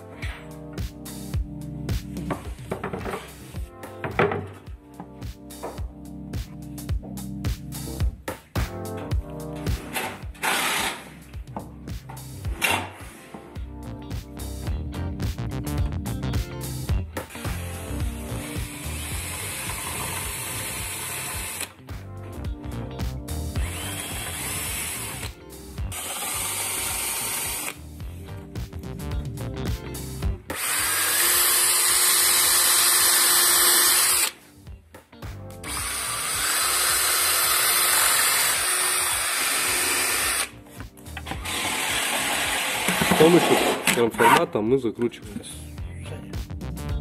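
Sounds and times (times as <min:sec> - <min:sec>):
background music: 0:00.0 - 0:47.0
cordless drill boring into wood: 0:10.4 - 0:11.0, 0:18.5 - 0:21.7, 0:23.6 - 0:25.3, 0:25.9 - 0:27.8, 0:30.5 - 0:34.4, 0:35.6 - 0:40.5, 0:41.3 - 0:44.4.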